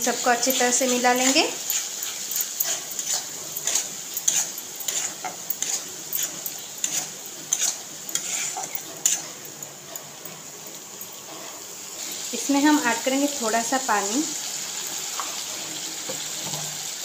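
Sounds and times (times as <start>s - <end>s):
metal spatula scraping a pan: 0.0s - 13.1s, 14.8s - 17.0s
oil sizzling: 0.0s - 17.0s.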